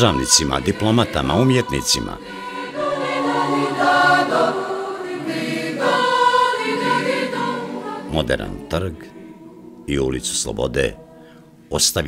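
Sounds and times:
choir singing held notes: 0:00.0 - 0:11.6.

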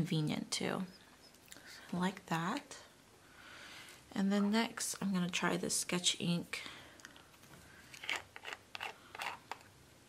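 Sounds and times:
plastic screw cap scraping: 0:07.9 - 0:09.7.

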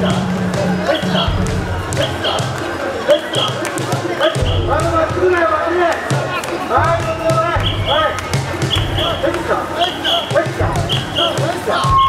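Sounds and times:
people chanting in rhythm: 0:00.0 - 0:12.0.

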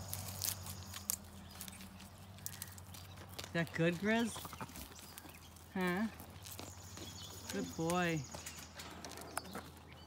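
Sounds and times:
goat chewing crisp greens: 0:00.0 - 0:10.0.

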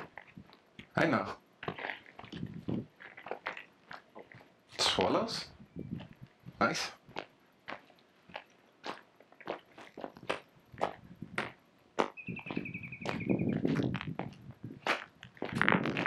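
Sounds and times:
footsteps crunching on gravel: 0:00.0 - 0:16.0
bird whistled call: 0:12.2 - 0:13.6.

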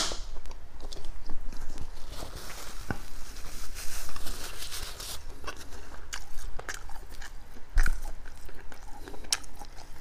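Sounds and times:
man chewing food: 0:00.3 - 0:10.0.

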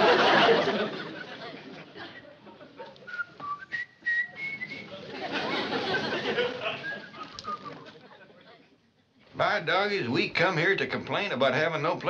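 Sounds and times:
soft background murmur: 0:00.7 - 0:09.9
short whistle-like notes: 0:03.1 - 0:04.9, 0:06.8 - 0:07.8.

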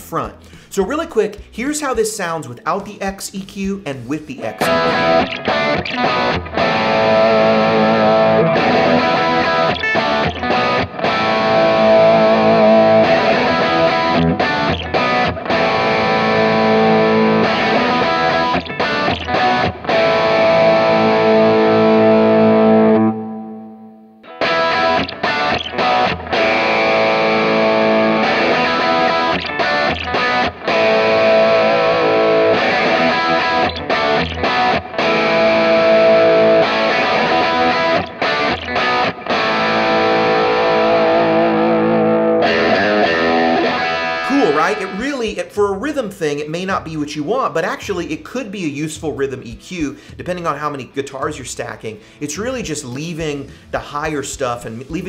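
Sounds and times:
distorted electric guitar rock rhythm: 0:00.0 - 0:55.0.

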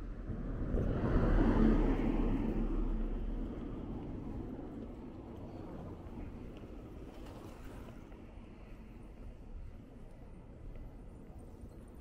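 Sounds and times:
car passing: 0:00.0 - 0:08.1.

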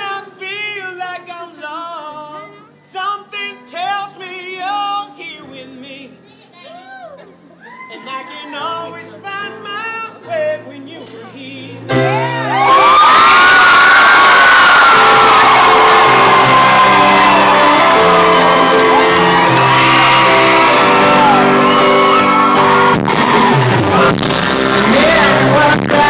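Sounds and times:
crowd cheering and screaming: 0:11.9 - 0:26.0.

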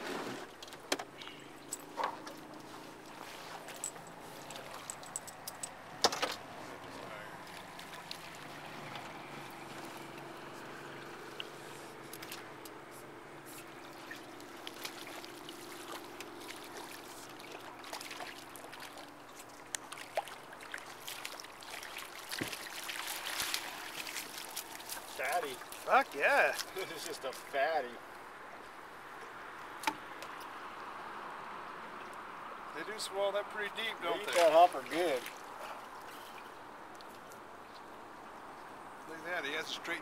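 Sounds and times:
river water lapping against boat: 0:00.0 - 0:40.0
handling clicks and knocks: 0:03.7 - 0:06.5.

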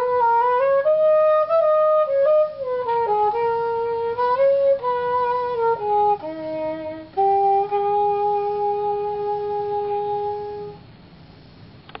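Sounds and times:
cornetto long note: 0:00.0 - 0:10.8.

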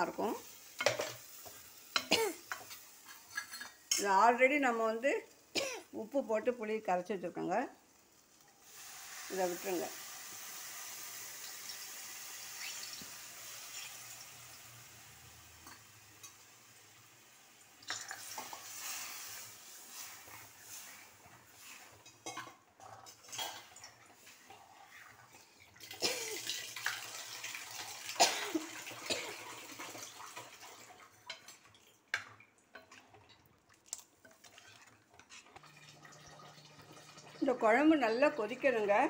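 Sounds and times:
liquid pouring into hot pan: 0:08.1 - 0:22.2, 0:23.0 - 0:37.4.

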